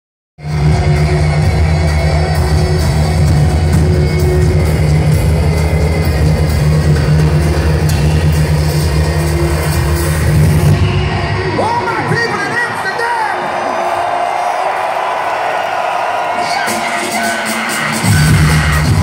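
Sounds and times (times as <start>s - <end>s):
heavy steady bass line: 0.4s - 11.6s, 17.6s - 19.0s
live electronic rock music: 0.4s - 13.4s, 16.2s - 19.0s.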